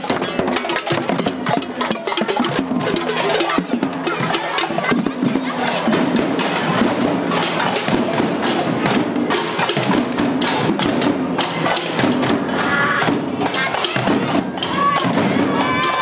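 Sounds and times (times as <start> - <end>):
children calling out: 0.0 - 16.0
drums and hand percussion: 0.0 - 16.0.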